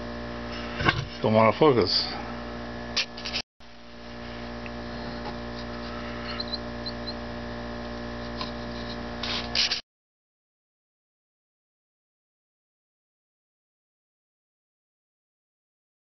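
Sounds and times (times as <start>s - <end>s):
electrical mains hum: 0.0s - 9.8s.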